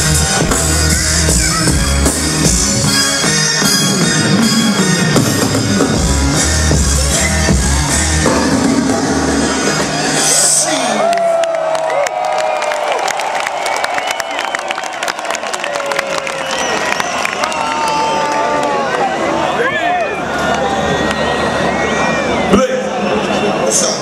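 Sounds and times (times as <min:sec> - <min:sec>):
concert music with heavy bass beat: 0:00.0 - 0:11.1
crowd cheering and whooping: 0:07.0 - 0:24.0.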